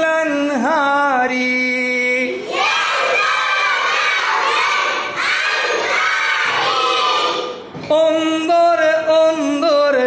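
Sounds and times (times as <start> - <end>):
children singing loudly: 2.4 - 7.7.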